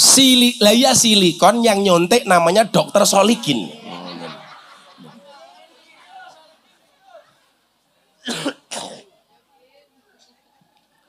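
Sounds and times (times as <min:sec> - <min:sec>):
man coughing: 0:08.2 - 0:09.1.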